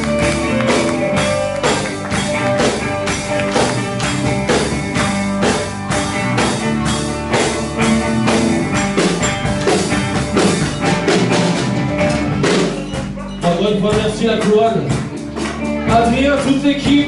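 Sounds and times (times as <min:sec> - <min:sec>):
bass guitar: 0:00.0 - 0:17.0
drum kit beat: 0:00.0 - 0:17.0
electric guitar: 0:00.0 - 0:17.0.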